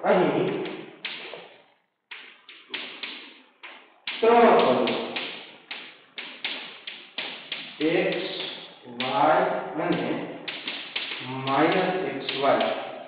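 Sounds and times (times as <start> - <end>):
chalk tapping on a blackboard: 0.5 - 1.4, 2.1 - 9.2, 9.9 - 12.8.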